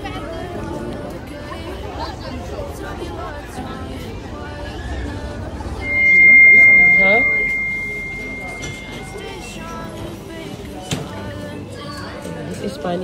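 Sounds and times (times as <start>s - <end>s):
crowd chatter: 0.0s - 13.0s
high steady tone: 5.8s - 9.6s.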